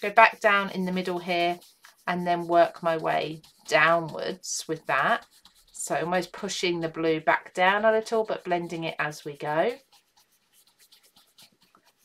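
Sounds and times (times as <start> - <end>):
brush scratching on cardstock: 0.0 - 12.0.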